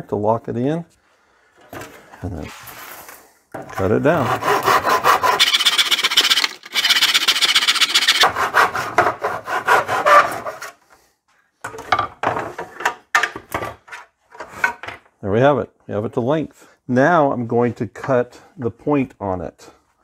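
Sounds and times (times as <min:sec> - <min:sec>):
handsaw cutting wood: 0:03.8 - 0:10.7.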